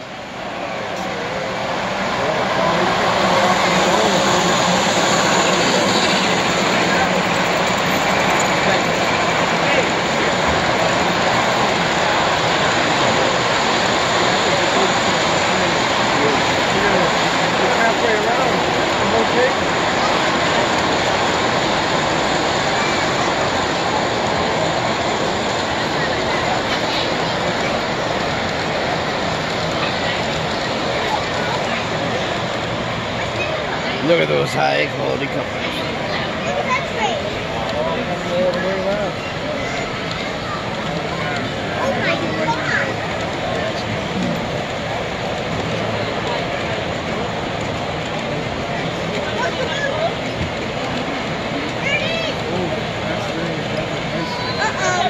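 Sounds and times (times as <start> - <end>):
model train wheels rumbling on rails: 0.0 - 55.0
murmur of crowd: 0.0 - 55.0.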